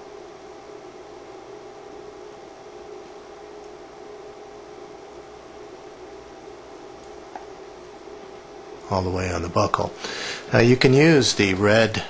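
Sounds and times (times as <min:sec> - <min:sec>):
dental equipment low hum: 0:00.0 - 0:12.0.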